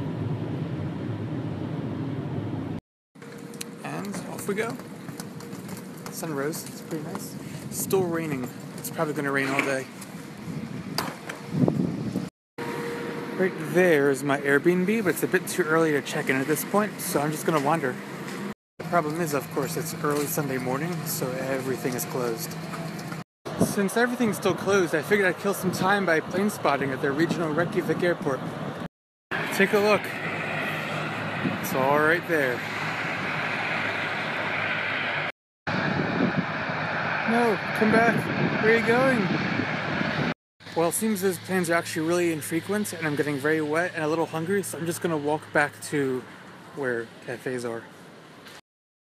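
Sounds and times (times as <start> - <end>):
steady rushing outdoor noise: 0.0 - 48.6.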